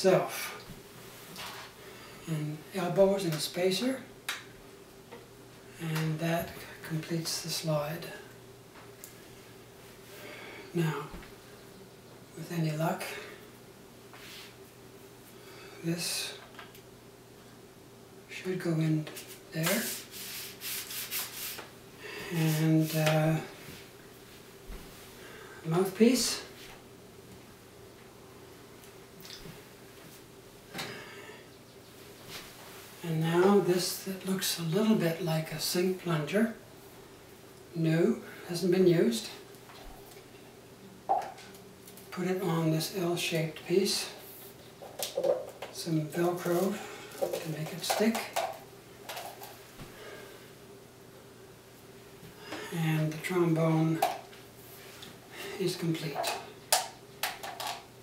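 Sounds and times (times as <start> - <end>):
plastic parts clicking and rustling: 57.2 - 57.9.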